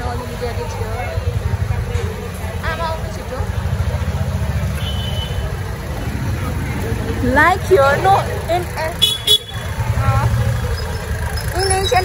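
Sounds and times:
faint crowd chatter: 0.0 - 12.0.

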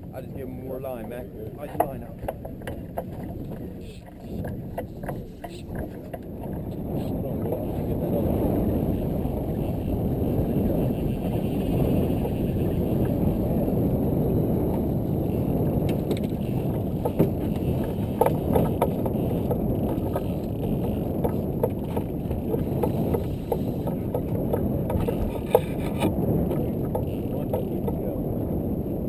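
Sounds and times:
wind rumble on microphone: 0.0 - 29.0.

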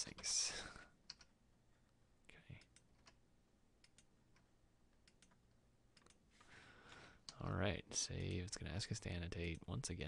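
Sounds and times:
computer mouse and keyboard clicks: 1.1 - 1.3.

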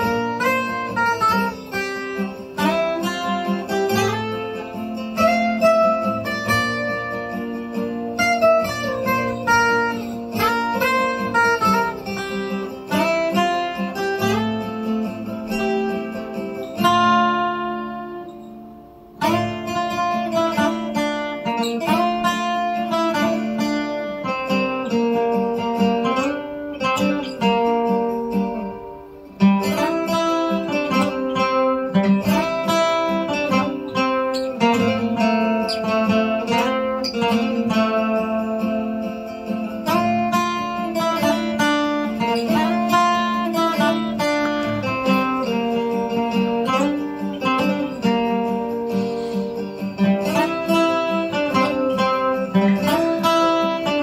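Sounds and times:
acoustic guitar picking: 0.0 - 54.0.

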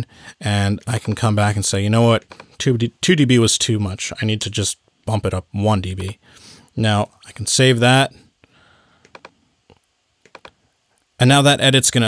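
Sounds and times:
keyboard and mouse clicks: 9.0 - 10.6.

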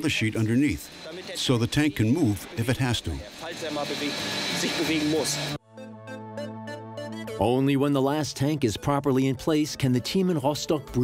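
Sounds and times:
man speaking: 0.0 - 5.5, 7.4 - 11.0
industrial hall background hiss: 0.0 - 5.6
thin high whine: 0.0 - 5.6.

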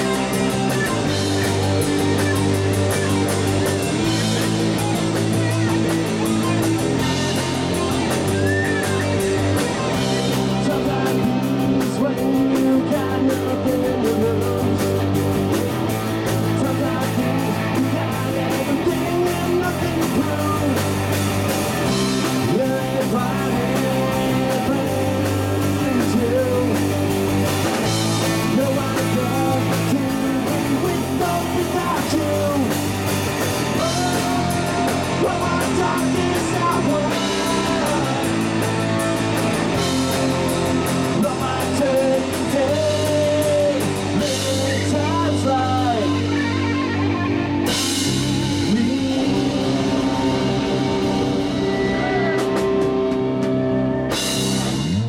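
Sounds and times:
drums: 0.0 - 55.0
electric guitars: 0.0 - 55.0
man singing through microphone: 10.4 - 15.0, 16.3 - 21.0, 22.2 - 27.0, 28.2 - 32.8, 33.7 - 38.4, 41.0 - 46.4, 48.6 - 50.9.

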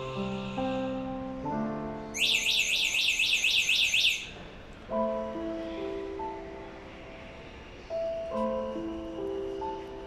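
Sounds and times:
soft keyboard background music: 0.0 - 10.0.

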